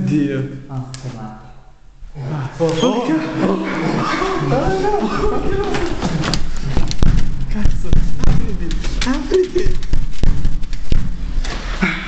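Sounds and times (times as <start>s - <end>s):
rumbling din: 2.9s - 11.9s
jumbled thumps and knocks: 4.5s - 11.5s.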